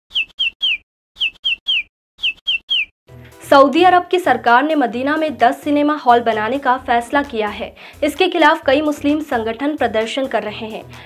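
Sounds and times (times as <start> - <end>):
bird tweet chirps: 0.1 - 2.9.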